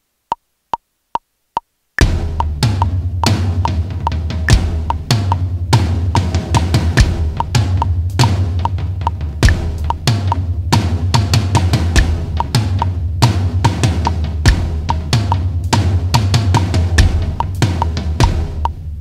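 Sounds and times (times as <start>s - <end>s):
metronome click: 2.0s - 5.4s, 6.6s - 10.4s, 11.6s - 13.0s, 16.6s - 18.8s
electronic drum kit: 2.0s - 19.0s.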